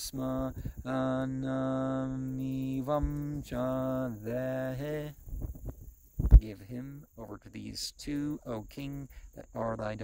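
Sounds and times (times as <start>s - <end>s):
man chanting: 0.0s - 5.2s, 6.4s - 10.0s.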